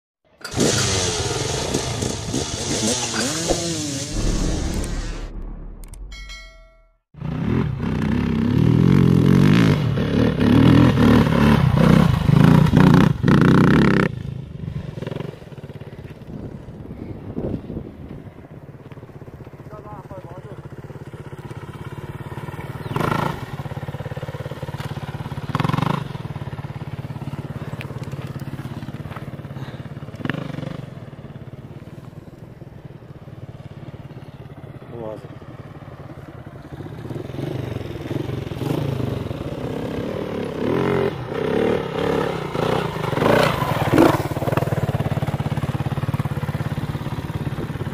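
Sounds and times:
motocross bike engine revving: 0.4s - 6.0s, 7.2s - 14.2s, 21.3s - 26.6s, 37.0s - 46.8s
intro tones: 3.4s - 7.0s.

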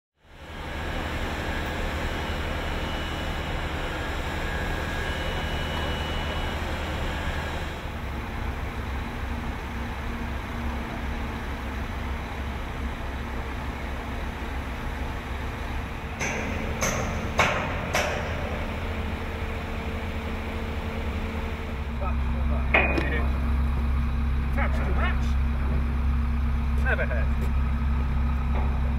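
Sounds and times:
construction machinery humming: 0.2s - 28.9s
sharp metallic knocks: 16.1s - 18.7s.

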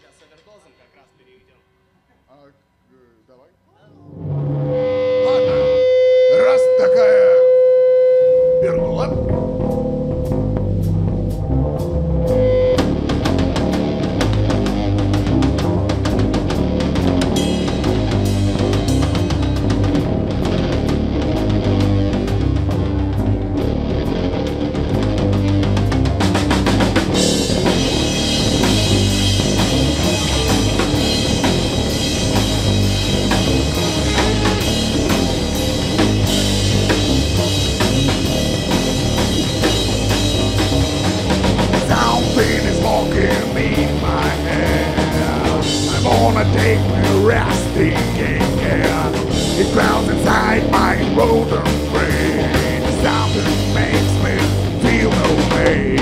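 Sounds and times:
cymbals: 0.0s - 3.0s, 27.1s - 46.3s
electric guitar held note: 3.9s - 9.7s
live rock band playing: 8.7s - 56.0s.

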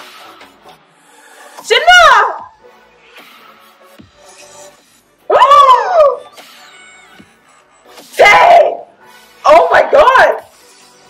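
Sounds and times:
woman squealing: 5.3s - 7.2s.

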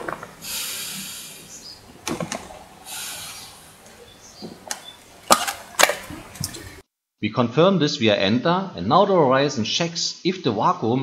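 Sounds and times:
hissing inhalations through mouthpiece: 0.4s - 1.9s, 2.8s - 4.4s.

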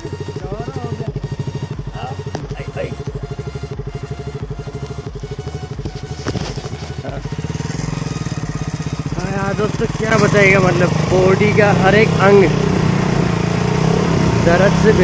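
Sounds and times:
motorcycle engine running: 0.0s - 15.0s.

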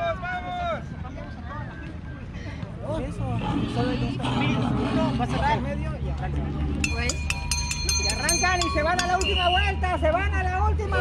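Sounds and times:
people's voices: 0.0s - 11.0s
high-pitched tone: 6.9s - 10.0s.

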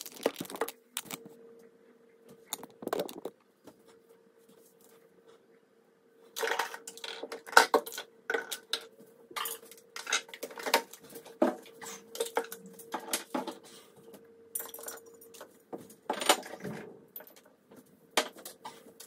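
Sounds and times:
faint steady hum: 0.0s - 19.0s.

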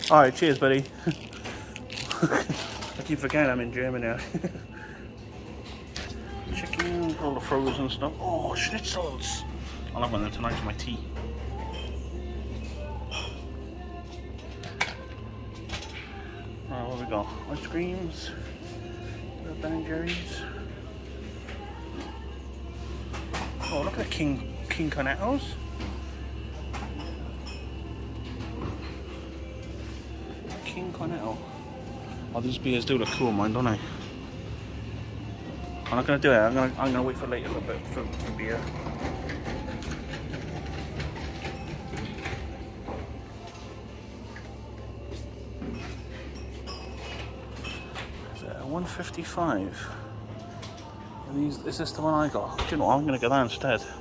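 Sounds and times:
refrigeration hum: 0.0s - 54.0s
shopping trolley rolling on tiles: 37.2s - 43.8s.

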